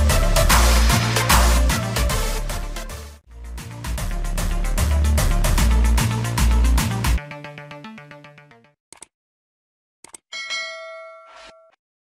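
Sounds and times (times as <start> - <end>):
bright ringing chime: 10.3 - 11.8.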